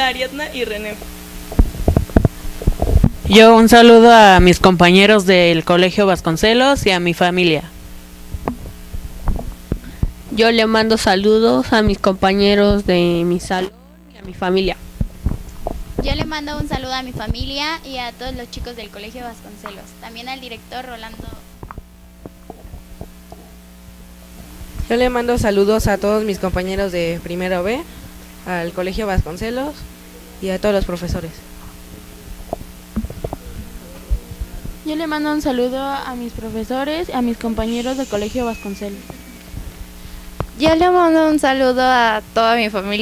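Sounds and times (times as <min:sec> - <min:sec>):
low electrical hum: 0:00.0 - 0:43.0
microphone handling thumps: 0:00.9 - 0:03.6, 0:07.9 - 0:18.8, 0:21.1 - 0:28.4, 0:29.0 - 0:41.3.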